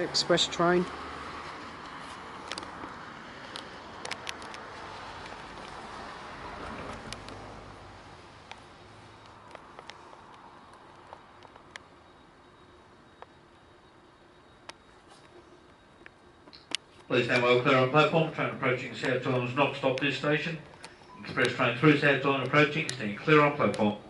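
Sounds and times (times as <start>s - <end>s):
outdoor hiss and rumble: 0.0s - 24.0s
small clicks: 3.4s - 5.8s.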